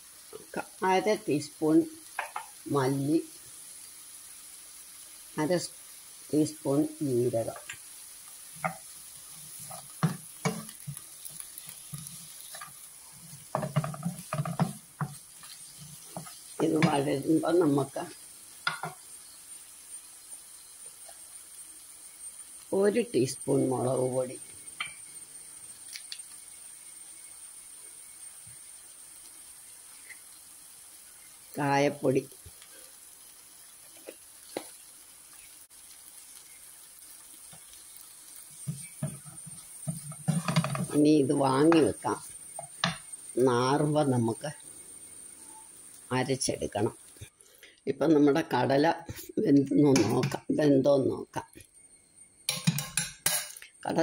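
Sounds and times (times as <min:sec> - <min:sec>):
food sizzling in oil: 0:00.0 - 0:54.0
wooden spatula stirring a pan: 0:02.0 - 0:02.6, 0:05.7 - 0:19.5, 0:31.0 - 0:43.8
spatula scraping frying pan: 0:08.4 - 0:17.2, 0:38.4 - 0:43.2.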